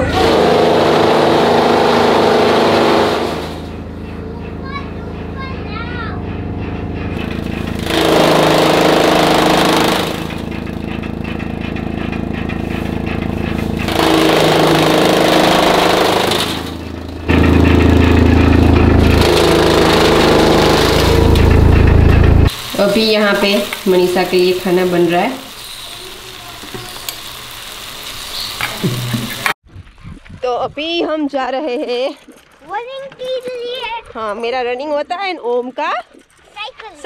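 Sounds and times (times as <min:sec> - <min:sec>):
chaff cutter chopping fodder: 0:00.0 - 0:03.8, 0:07.0 - 0:29.6.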